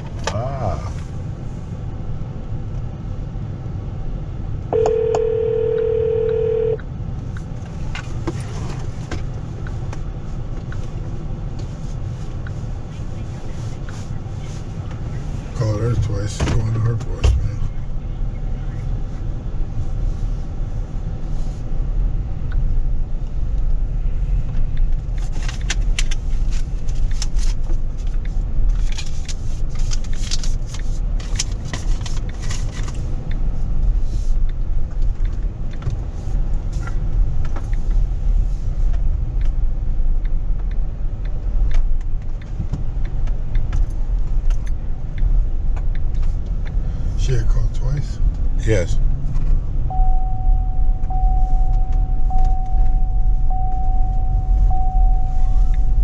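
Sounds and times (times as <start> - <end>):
car engine and road rumble: 0.0 - 56.0
steady single tone: 4.7 - 6.8, 49.9 - 56.0.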